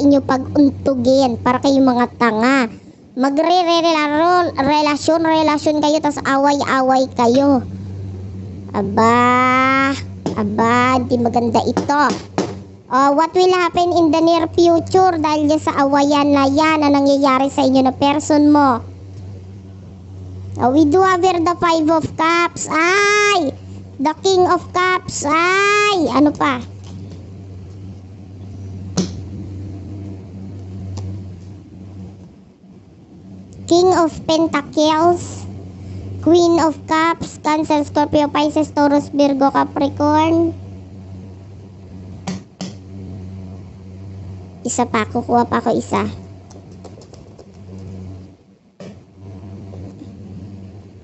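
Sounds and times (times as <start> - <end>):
steady low hum: 0.0 - 51.0
cards being shuffled: 46.5 - 47.9.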